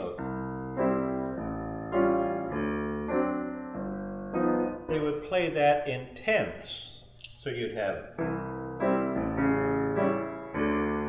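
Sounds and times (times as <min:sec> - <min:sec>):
stride piano playing: 0:00.0 - 0:06.1, 0:07.6 - 0:11.0.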